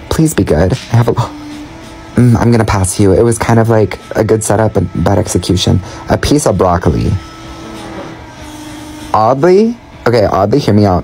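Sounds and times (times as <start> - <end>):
hydraulic press humming: 0.0 - 11.0.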